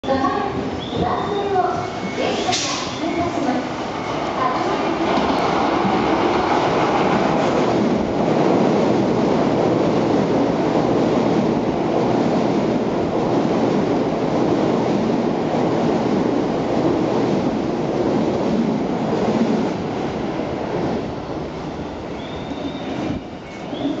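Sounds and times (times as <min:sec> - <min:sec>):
train wheels rumbling on rails: 0:00.1 - 0:24.0.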